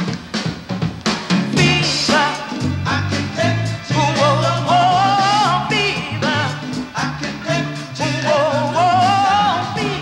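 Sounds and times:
band with steady bass line: 0:00.0 - 0:10.0.

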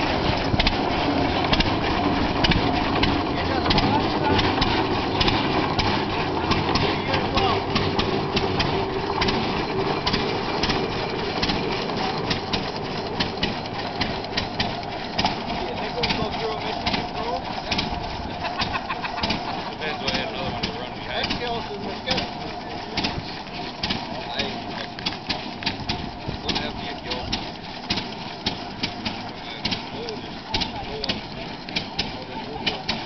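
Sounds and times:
tractor engine popping and ticking: 0:00.0 - 0:33.0
people talking: 0:02.5 - 0:14.3, 0:15.1 - 0:25.0, 0:26.2 - 0:27.4, 0:29.2 - 0:33.0.

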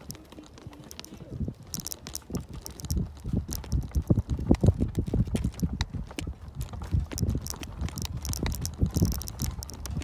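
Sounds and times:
wheelchair rolling over pavement: 0:00.0 - 0:10.0.

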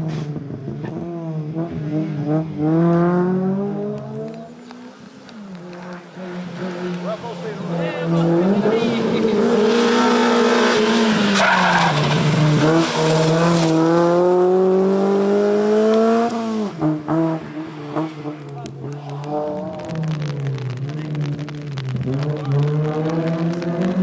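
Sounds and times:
race car engine revving: 0:00.0 - 0:24.0.

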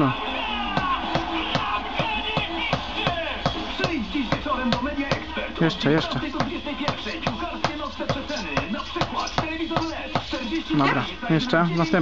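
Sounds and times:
radio playing music and voices: 0:00.0 - 0:12.0
hammer knocking stone cobbles: 0:06.3 - 0:10.4.

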